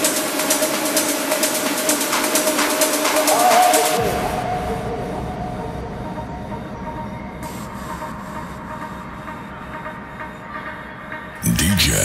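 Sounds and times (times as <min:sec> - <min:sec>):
techno low rumble with hiss: 0:11.4 - 0:12.0.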